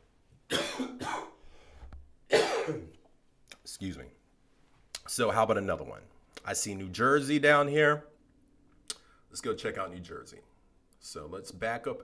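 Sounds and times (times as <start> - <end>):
man coughing: 0.5 - 1.4, 2.3 - 3.0.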